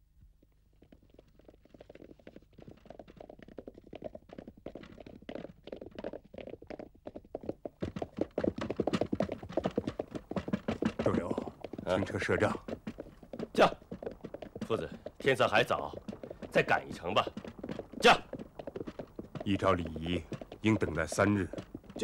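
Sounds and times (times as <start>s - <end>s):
horse hoofbeats: 0.4s - 22.0s
carriages rumbling: 10.7s - 22.0s.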